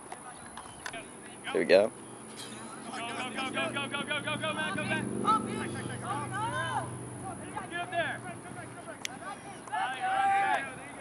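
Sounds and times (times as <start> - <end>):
players calling and shouting: 0.0 - 11.0
steady low hum: 0.0 - 11.0.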